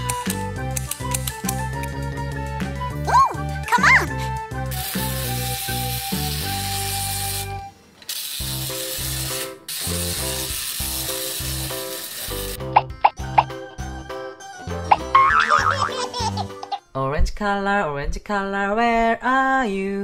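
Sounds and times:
children's music with pulsing bass: 0.0s - 4.7s, 12.6s - 16.8s.

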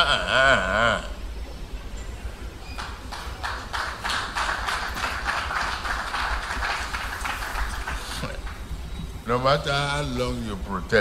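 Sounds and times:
audience clapping in rhythm: 2.8s - 8.7s.

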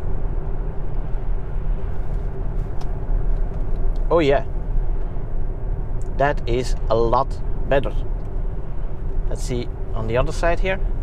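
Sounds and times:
road and tyre rumble: 0.0s - 11.0s.

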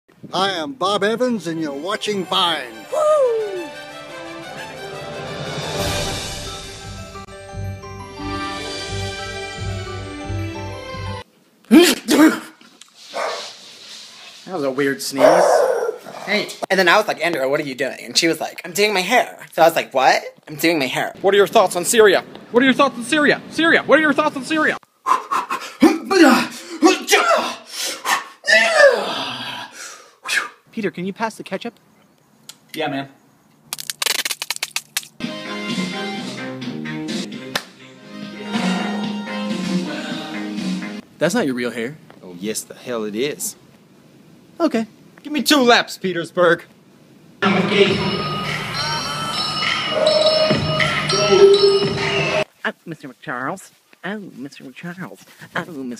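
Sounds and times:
man sneezing: 11.7s - 12.6s, 25.0s - 30.6s
sharp crack: 33.7s - 35.2s, 37.5s - 37.8s
squeeze bottle sputtering: 33.7s - 35.2s.

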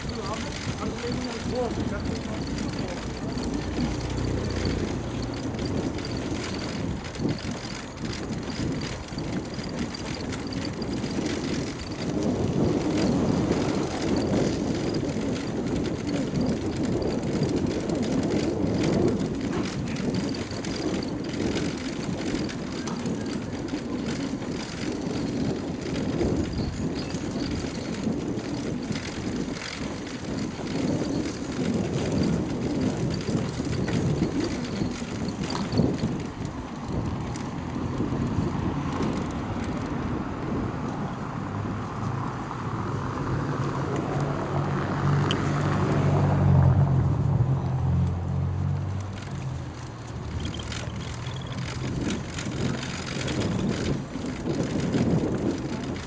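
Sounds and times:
bicycle tyres rumbling on bricks: 0.0s - 56.0s
bike rattles: 0.0s - 56.0s.

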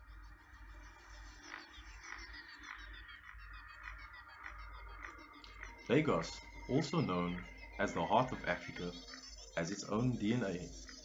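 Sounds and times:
small high chirps: 0.2s - 11.0s
croak-like animal call: 0.3s - 10.8s.

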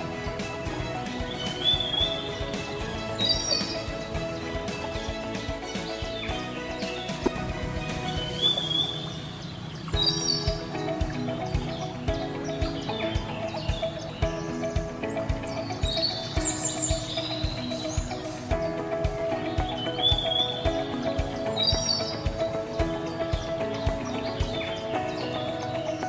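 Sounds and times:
music with steady beat: 0.0s - 9.1s, 9.9s - 26.0s
bird-like chirps: 0.0s - 26.0s.

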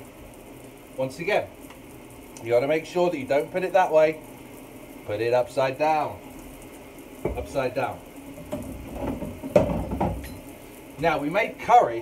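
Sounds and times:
dishes and pans clattering: 8.5s - 10.4s.

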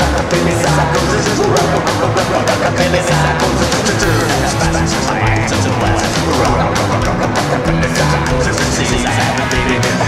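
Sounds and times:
bass line: 0.0s - 10.0s
electric guitar: 0.0s - 10.0s
fast drum beat: 0.0s - 10.0s.

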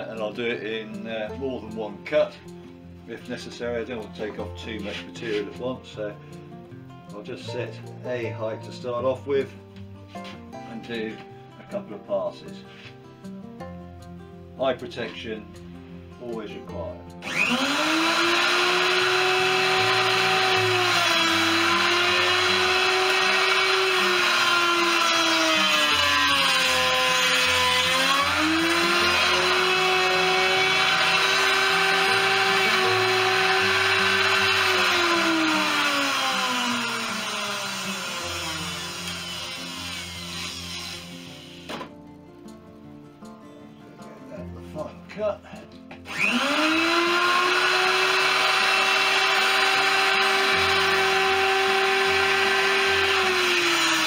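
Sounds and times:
electric router cutting wood: 17.2s - 42.0s, 46.0s - 54.0s.

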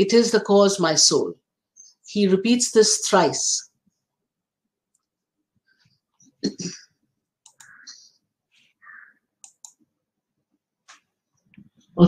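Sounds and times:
faint clicks: 7.4s - 8.0s, 9.4s - 9.8s.

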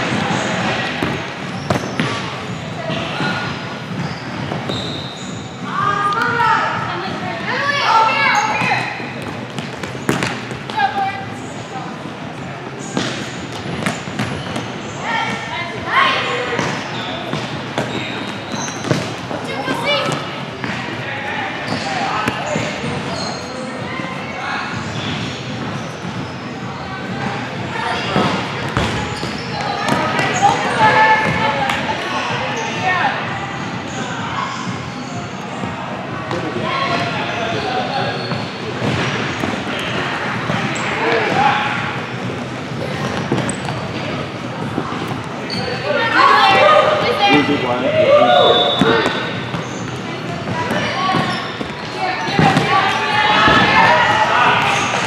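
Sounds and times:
sharp ball impacts: 1.0s - 2.3s, 9.2s - 10.8s
short high shoe squeaks: 4.0s - 5.6s, 17.0s - 19.0s, 21.6s - 23.7s, 45.4s - 45.8s
people calling out: 45.4s - 49.4s
children shouting: 45.8s - 49.1s.

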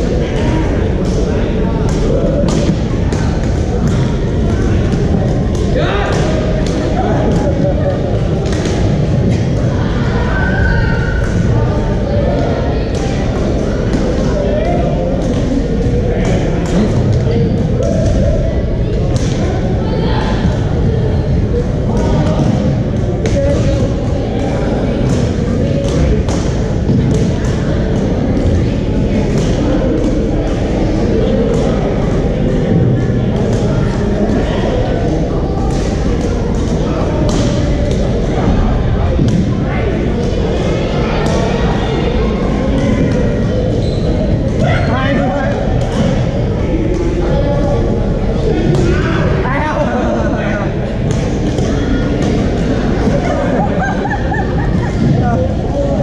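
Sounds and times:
murmur of voices echoing: 0.0s - 56.0s.

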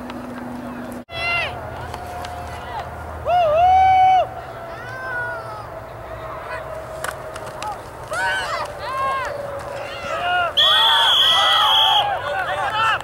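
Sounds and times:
spectators shouting: 1.1s - 13.0s.

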